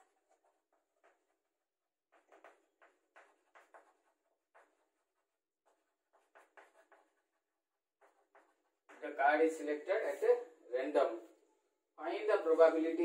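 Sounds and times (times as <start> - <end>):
chalk scratching on chalkboard: 2.1 - 9.5.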